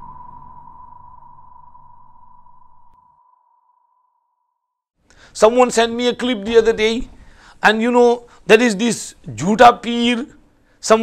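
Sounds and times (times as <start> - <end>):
low rumble: 0.0 - 3.0
ringing tone: 0.0 - 4.6.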